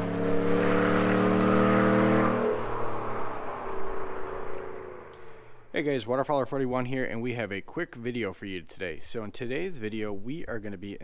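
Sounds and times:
pickup truck engine passing: 0.0 - 5.7.

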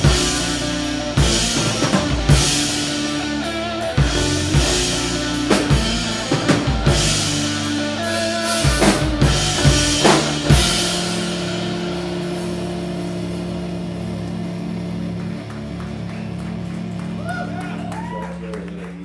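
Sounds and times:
drum hits and cymbal crashes: 0.0 - 14.4
live rock band: 0.0 - 19.0.

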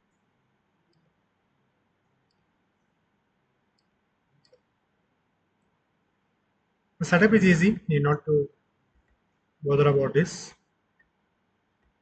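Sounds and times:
computer mouse clicks: 0.9 - 1.1, 3.7 - 4.7.

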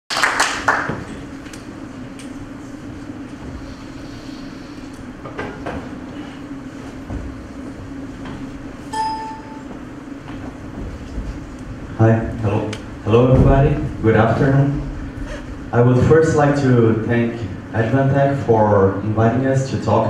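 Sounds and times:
microphone and pa hum: 0.9 - 20.0
ringing tone: 8.9 - 9.8.

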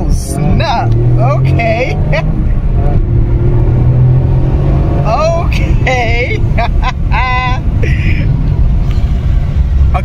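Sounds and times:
car engine drone: 0.0 - 10.0
road noise inside car: 0.0 - 10.0
man laughing: 5.6 - 8.4.

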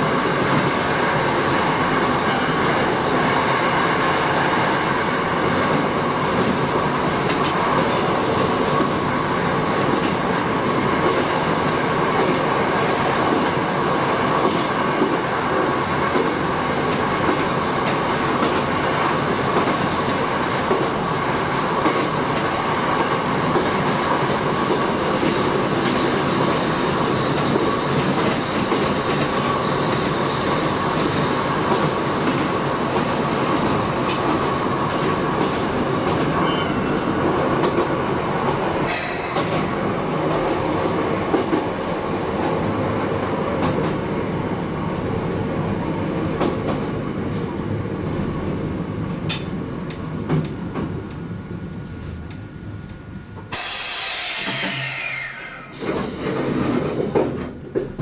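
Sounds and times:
train wheels rolling on rail: 0.0 - 58.0
clickety-clack over rail joints: 0.3 - 2.5, 5.4 - 38.6, 39.3 - 44.7, 46.1 - 47.6, 49.2 - 53.6, 55.8 - 58.0
short high squeal: 38.9 - 39.5, 53.5 - 55.8
train motor whine: 51.1 - 56.1.

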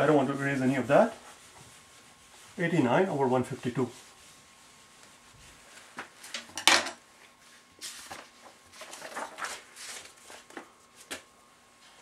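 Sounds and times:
soft rustle: 0.0 - 6.4, 7.0 - 12.0
objects being handled: 7.8 - 11.3.

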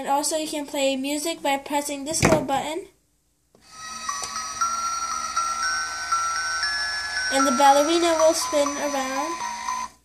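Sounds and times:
music box chiming melody: 3.7 - 10.0.

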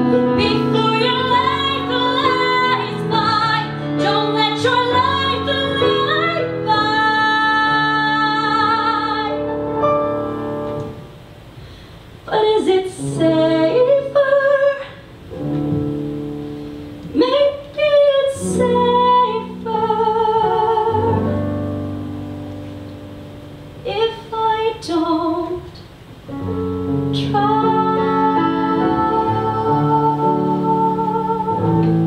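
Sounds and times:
piano chords: 0.0 - 11.6, 12.3 - 32.0
woman singing ballad: 0.2 - 9.8, 12.3 - 15.1, 17.1 - 21.8, 23.8 - 25.9, 27.0 - 32.0.

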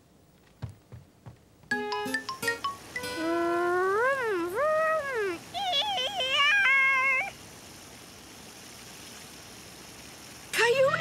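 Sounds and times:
child making car engine noises: 3.2 - 7.4.

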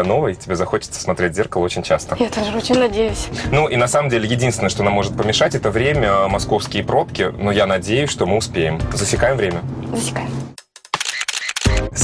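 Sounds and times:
rapid mechanical clicks: 10.6 - 11.9.

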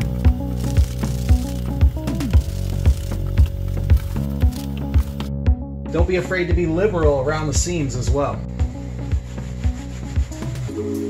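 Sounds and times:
cloth wiping vinyl seat: 9.0 - 10.7.

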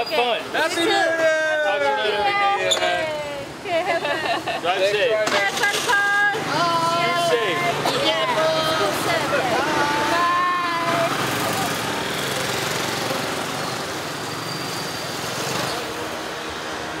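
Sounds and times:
voices calling out: 0.0 - 14.8
motor scooters running: 5.2 - 16.2.

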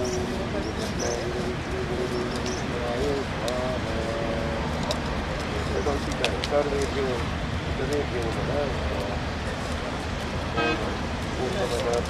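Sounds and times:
short horn toot: 10.6 - 10.9.

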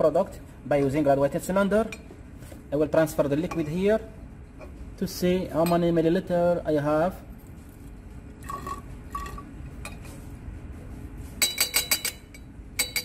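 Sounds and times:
glass clinks: 11.4 - 13.0
glass ringing: 11.4 - 13.0.

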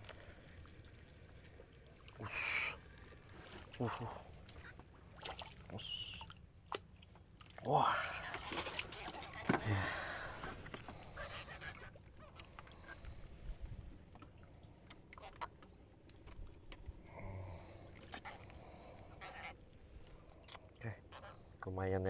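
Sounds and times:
fish splashing: 0.0 - 13.3.

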